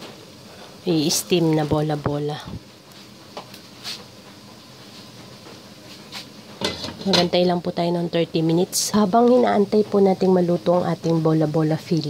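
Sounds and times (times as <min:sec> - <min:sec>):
water boiling hiss: 0:00.0 - 0:12.0.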